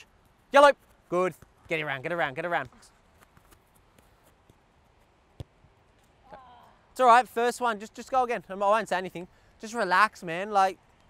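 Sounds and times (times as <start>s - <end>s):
soft footsteps and ball touches on grass: 0.1s - 6.2s.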